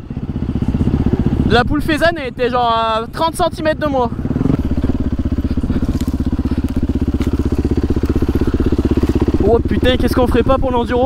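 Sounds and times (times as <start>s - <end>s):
motorcycle engine running: 0.0s - 11.0s
sharp cracks: 5.7s - 9.3s.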